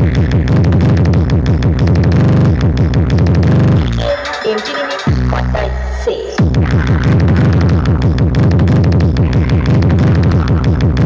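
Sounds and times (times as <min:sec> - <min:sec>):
electronic dance music with heavy bass: 0:00.0 - 0:11.0.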